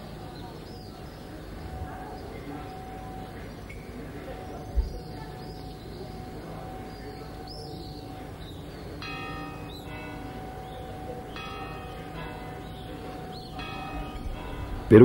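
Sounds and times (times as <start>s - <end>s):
church bell tolling: 0.0s - 15.0s.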